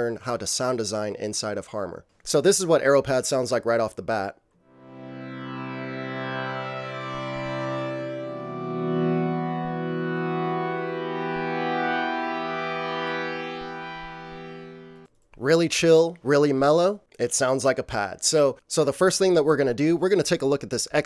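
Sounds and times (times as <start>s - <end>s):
synthesizer pad chords: 4.6s - 15.1s.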